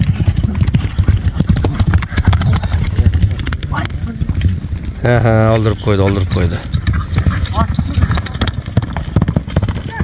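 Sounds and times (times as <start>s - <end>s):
horses galloping on hard dirt: 0.0s - 10.0s.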